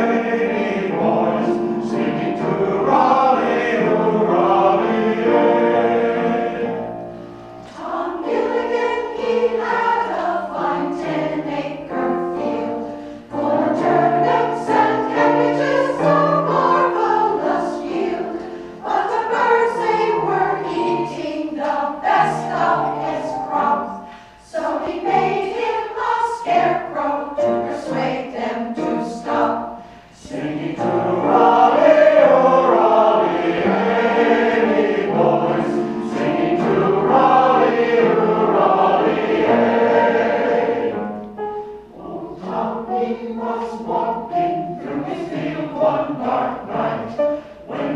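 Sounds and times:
mixed choir singing: 0.0 - 47.9.

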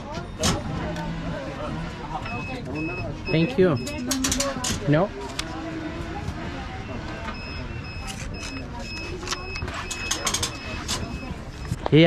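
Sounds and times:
background chatter: 0.0 - 12.0
electronic beeper short beeps: 2.3 - 4.1, 7.2 - 11.8.

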